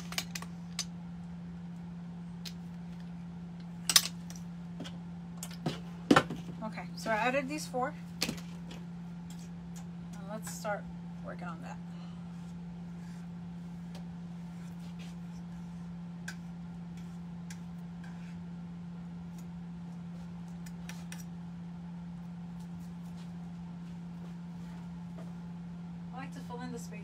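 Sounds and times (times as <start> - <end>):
low electrical hum: 0.0 - 27.0.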